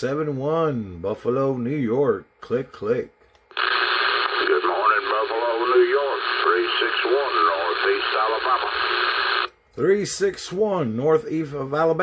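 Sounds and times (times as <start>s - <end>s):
static hiss: 3.5s - 9.5s
radio voice through speaker: 3.6s - 9.5s
man speaking close to microphone: 4.2s - 9.0s, 9.8s - 12.0s.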